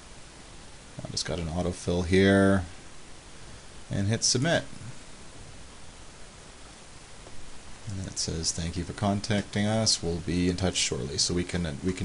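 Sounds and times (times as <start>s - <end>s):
low microphone hiss: 0.0s - 12.0s.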